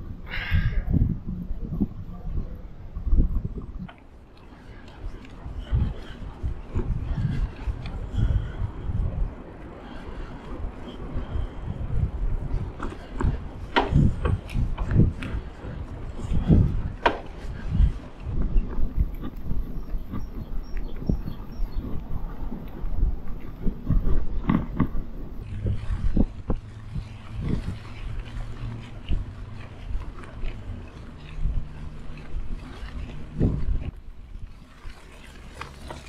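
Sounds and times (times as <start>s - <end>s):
bicycle tyres rumbling on gravel: 0.0s - 36.0s
bike knocking and rattling: 9.8s - 36.0s.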